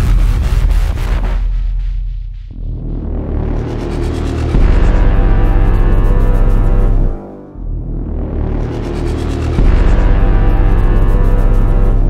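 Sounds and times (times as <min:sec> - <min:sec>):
deep boom rumbling: 0:00.0 - 0:08.4, 0:09.4 - 0:12.0.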